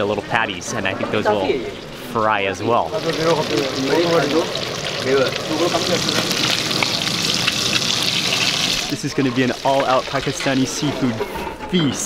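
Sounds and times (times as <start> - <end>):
fish frying in hot oil: 2.8 - 10.8.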